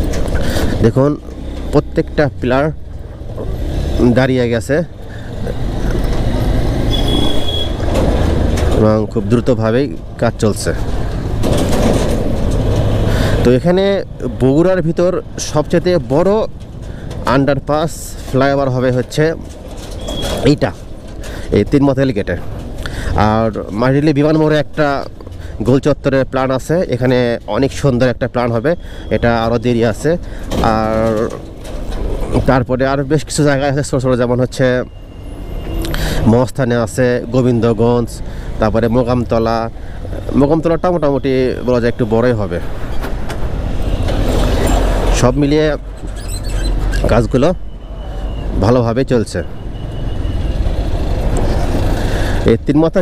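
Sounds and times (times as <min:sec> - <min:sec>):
man speaking: 0:00.0 - 0:02.8, 0:03.4 - 0:06.1, 0:08.7 - 0:10.9, 0:13.4 - 0:16.5, 0:23.1 - 0:31.4, 0:32.2 - 0:34.9, 0:36.2 - 0:39.7, 0:40.3 - 0:42.7, 0:45.1 - 0:45.8, 0:47.0 - 0:47.6, 0:48.5 - 0:49.5, 0:52.4 - 0:53.0
low rumble of road traffic: 0:00.0 - 0:53.0
wind: 0:00.0 - 0:53.0.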